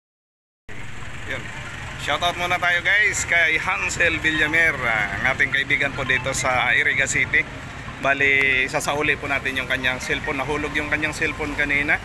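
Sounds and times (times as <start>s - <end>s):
low rumble of vehicles: 0.7s - 12.0s
street noise: 0.7s - 12.0s.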